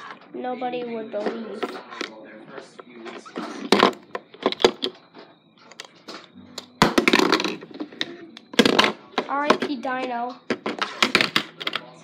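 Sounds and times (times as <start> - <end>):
plastic toy clattering and knocking: 3.1 - 5.0, 5.7 - 12.0.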